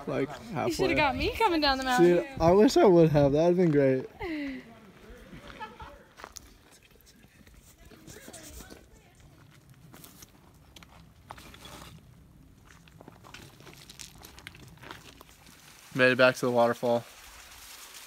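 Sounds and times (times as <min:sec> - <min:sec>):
footsteps on gravelly trail: 0:01.3 - 0:18.0
faint voices: 0:04.2 - 0:09.7.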